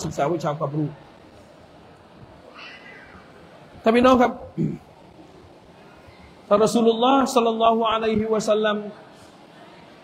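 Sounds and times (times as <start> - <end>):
faint high-pitched cry: 2.4 - 3.5.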